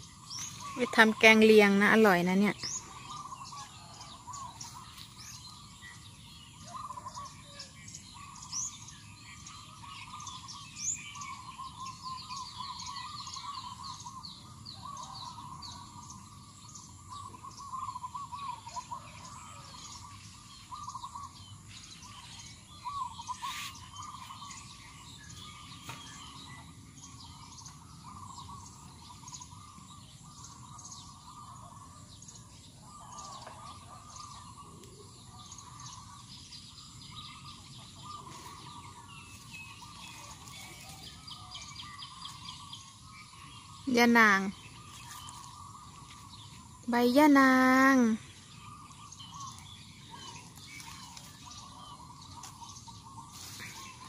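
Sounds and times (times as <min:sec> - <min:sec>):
birds chirping: 0:00.0 - 0:54.0
lower warbling bird call: 0:00.0 - 0:54.0.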